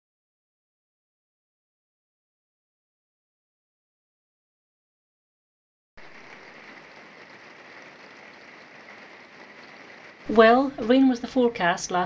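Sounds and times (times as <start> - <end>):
rain on a tiled roof: 6.0 - 12.0.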